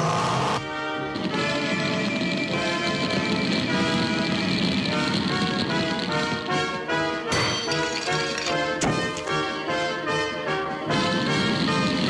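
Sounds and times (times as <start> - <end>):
orchestral cartoon music: 0.1 - 12.0.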